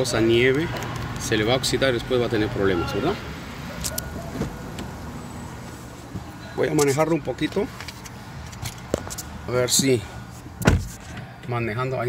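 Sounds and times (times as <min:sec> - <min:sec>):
car door opening: 0:03.8 - 0:05.0, 0:10.5 - 0:11.5.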